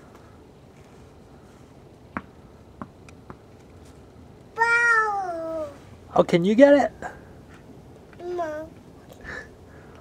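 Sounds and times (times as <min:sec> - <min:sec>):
tennis ball bouncing on hard ground: 0:02.1 - 0:03.5
child's high-pitched voice: 0:04.6 - 0:05.8, 0:08.2 - 0:08.8.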